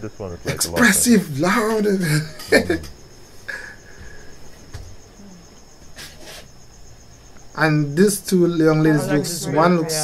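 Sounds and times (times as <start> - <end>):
high-pitched insect trill: 0.0 - 10.0
short hissy noises: 6.0 - 6.6.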